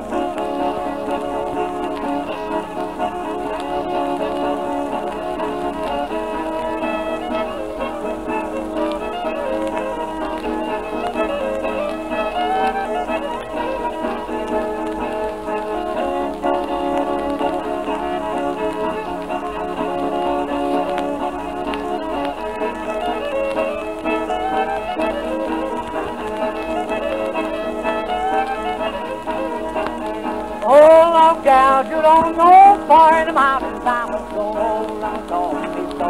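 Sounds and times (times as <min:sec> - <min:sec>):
record surface hiss and crackle: 0:00.0 - 0:36.0
string band with fiddle lead: 0:00.0 - 0:36.0.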